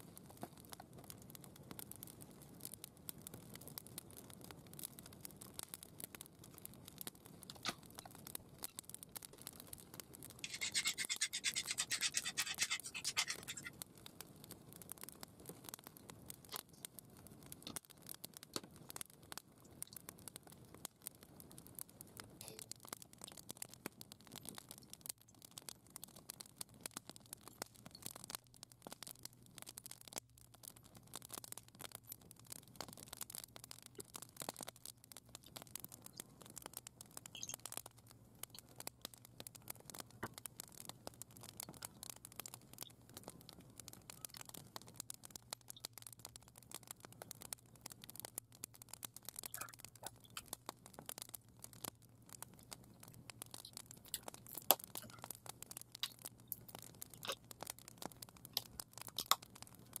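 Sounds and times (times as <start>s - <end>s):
faint dense crackling: 0.0s - 60.0s.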